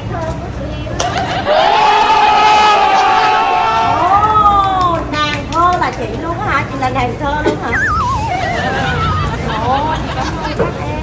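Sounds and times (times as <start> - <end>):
low crowd murmur: 0.0 - 11.0
excited high-pitched voices calling: 7.6 - 10.5.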